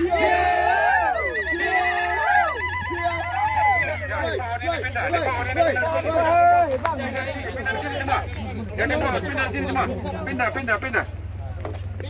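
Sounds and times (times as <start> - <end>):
high trilling ululation: 0.0 - 6.6
voices calling out in sliding cries: 0.0 - 10.0.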